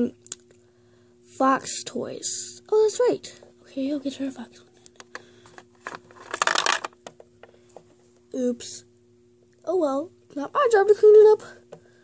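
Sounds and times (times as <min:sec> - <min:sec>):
plastic pieces rattling: 0:05.8 - 0:07.0.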